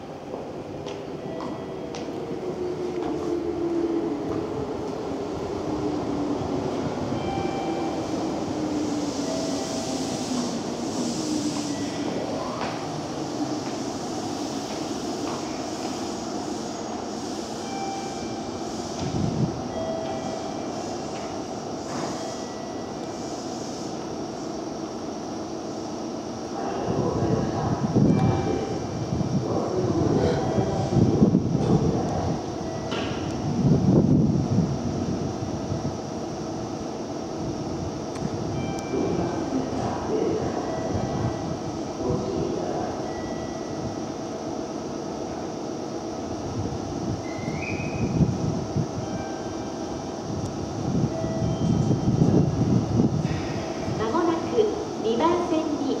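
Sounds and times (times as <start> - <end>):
electric train humming and rumbling: 0.0 - 56.0.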